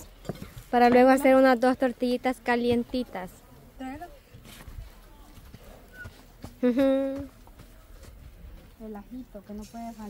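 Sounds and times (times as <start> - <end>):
footsteps on stony dirt: 0.0 - 3.4, 4.0 - 9.6.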